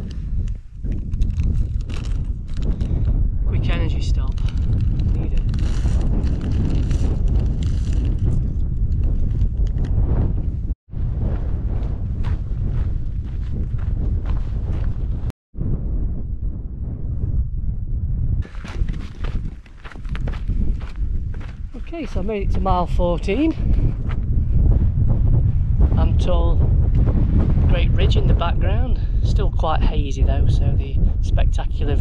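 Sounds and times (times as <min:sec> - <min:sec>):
wind buffeting microphone: 0:00.0 - 0:32.0
footsteps on path: 0:04.7 - 0:08.4, 0:12.2 - 0:15.3, 0:18.4 - 0:22.4.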